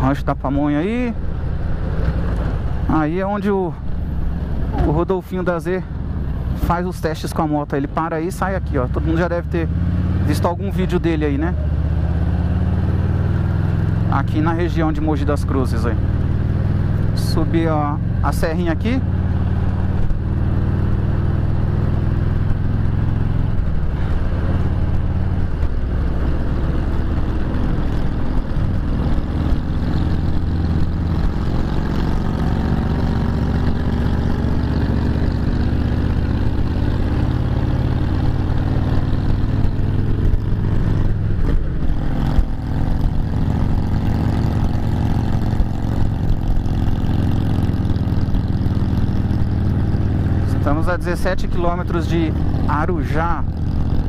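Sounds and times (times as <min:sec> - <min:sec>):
motorcycle engine running: 0:00.0 - 0:54.0
wind and road noise: 0:00.0 - 0:54.0.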